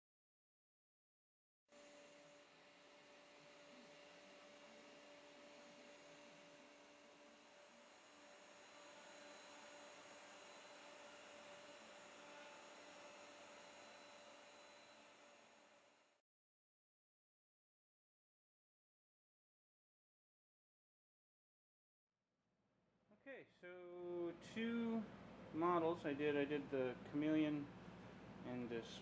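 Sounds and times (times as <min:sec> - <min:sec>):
router motor humming: 0:01.7 - 0:16.2.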